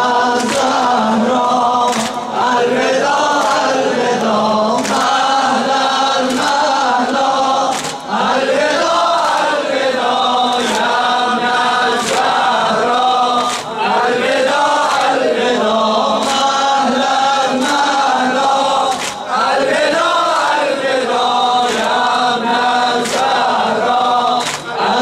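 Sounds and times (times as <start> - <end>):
people chanting a lament: 0.0 - 25.0
hands slapping chests: 0.4 - 0.9, 1.8 - 2.4, 3.3 - 5.6, 6.2 - 8.2, 9.1 - 9.7, 10.5 - 11.0, 12.0 - 12.5, 13.3 - 13.9, 16.1 - 16.8, 17.5 - 20.6, 21.6 - 22.1, 22.8 - 23.6, 24.2 - 25.0.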